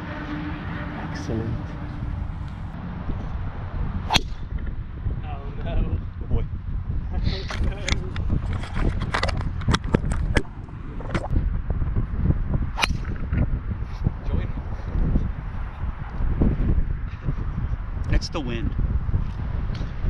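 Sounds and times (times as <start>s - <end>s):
wind buffeting microphone: 1.2s - 20.0s
golf club striking ball: 4.1s - 4.7s, 12.8s - 13.2s.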